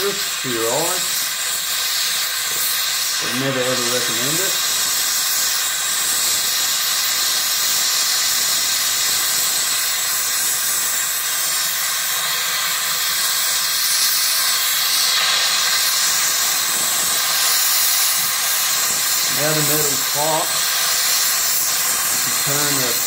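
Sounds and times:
gas torch flame hissing: 0.0 - 23.0.

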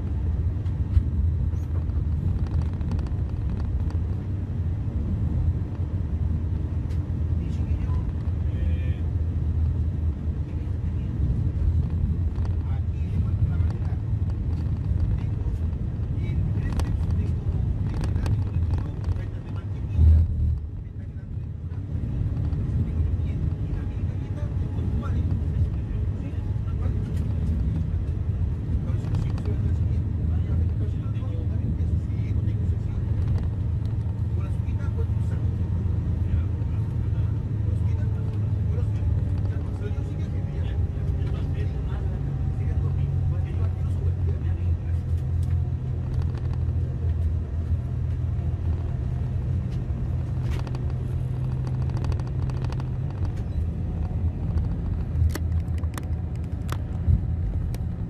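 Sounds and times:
vehicle road and engine rumble: 0.0 - 58.0.

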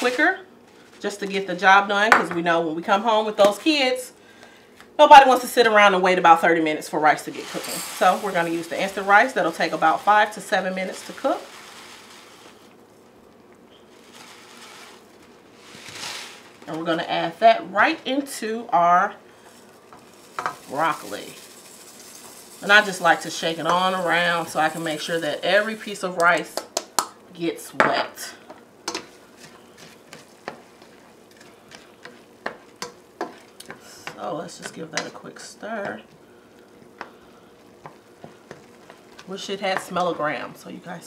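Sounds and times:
pot simmering hiss: 4.1 - 17.1, 17.8 - 27.4, 28.0 - 41.0
spoon stirring in a saucepan: 19.4 - 26.5, 28.4 - 40.3.

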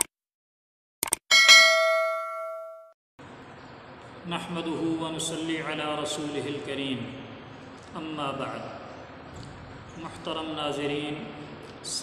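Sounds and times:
notification bell ding: 1.3 - 2.9.

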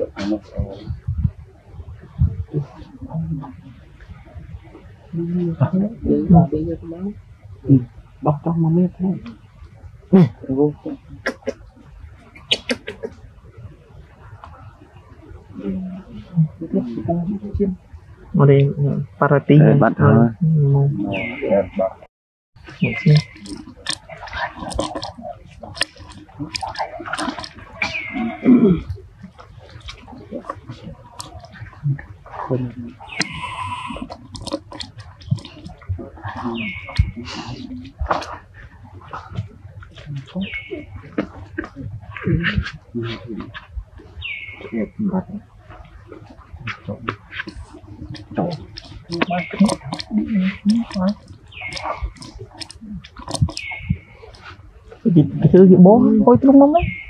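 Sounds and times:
monkeys calling: 0.0 - 1.0, 10.3 - 13.4, 20.9 - 57.0.

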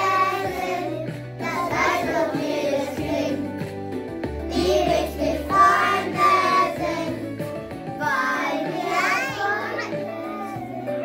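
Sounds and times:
children singing: 0.0 - 3.5, 4.5 - 7.3, 8.0 - 11.0
instrumental backing music: 0.0 - 11.0.

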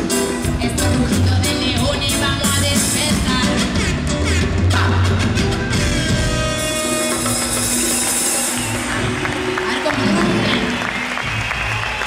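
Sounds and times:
live reggae band playing: 0.0 - 11.5
audience applauding: 6.7 - 12.0.

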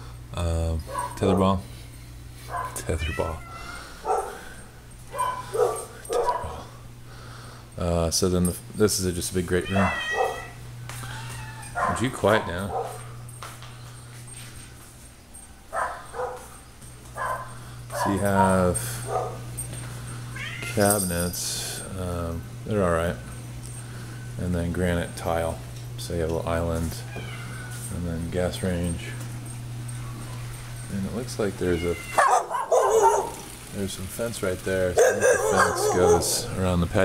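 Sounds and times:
steady low hum: 0.0 - 37.0
dog making faint sounds: 35.0 - 36.6.

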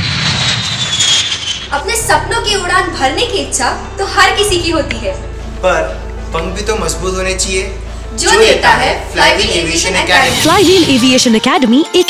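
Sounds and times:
high engine whine: 0.0 - 1.8
jet engines roaring: 0.0 - 1.8
woman speaking: 10.2 - 12.0.

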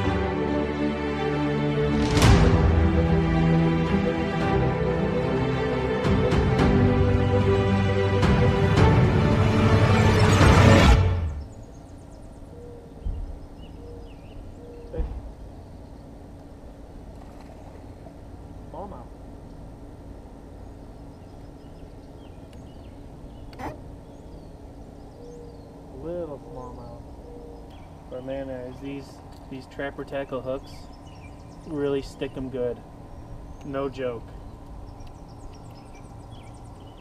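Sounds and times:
low steady hum: 0.0 - 37.0.

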